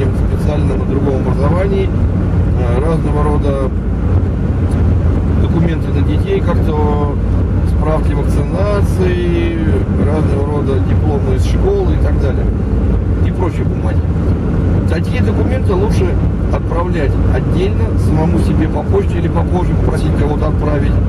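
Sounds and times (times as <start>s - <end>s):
car cabin road and engine drone: 0.0s - 21.0s.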